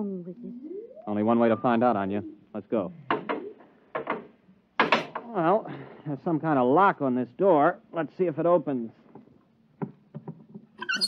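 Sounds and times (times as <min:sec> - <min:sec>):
high-pitched door opening sound: 0:10.8 - 0:11.0.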